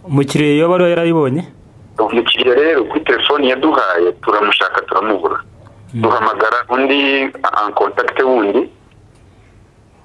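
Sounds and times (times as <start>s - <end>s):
person talking: 2.0s - 8.8s.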